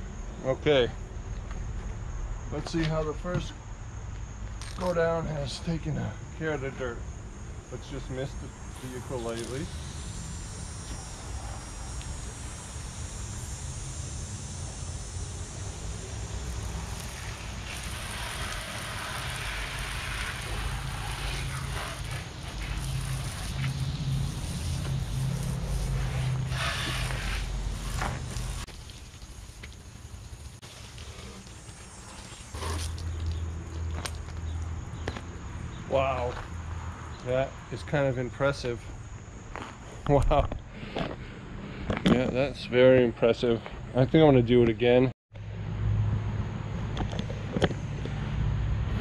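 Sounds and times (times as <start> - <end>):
hose spraying water: 7.8 - 33.9.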